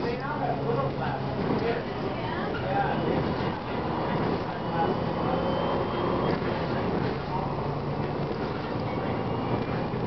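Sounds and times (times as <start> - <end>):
bus diesel engine running: 0.0 - 10.0
road noise: 0.0 - 10.0.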